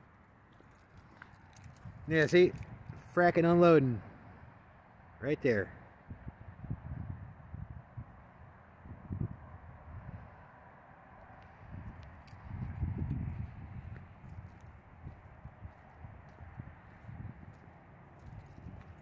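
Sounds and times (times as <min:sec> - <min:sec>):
wind buffeting microphone: 0:01.6 - 0:03.1, 0:06.0 - 0:10.4, 0:11.5 - 0:19.0.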